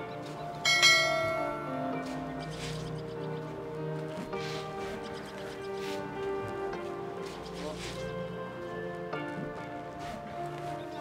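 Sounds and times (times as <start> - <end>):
soft background music: 0.0 - 11.0
bell ding: 0.6 - 2.0.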